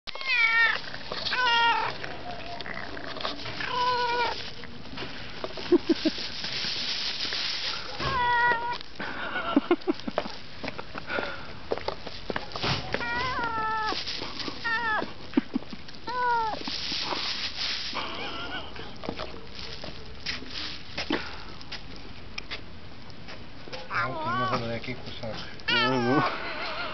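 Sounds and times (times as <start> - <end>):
cat growling meows: 0.1 - 4.4, 8.0 - 8.8, 12.9 - 14.0, 23.9 - 24.6, 25.7 - 26.3.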